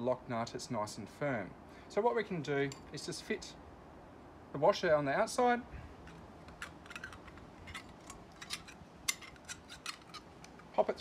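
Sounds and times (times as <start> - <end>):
light metal scrapes: 6.0 - 10.3
metal parts clicking: 6.0 - 10.8.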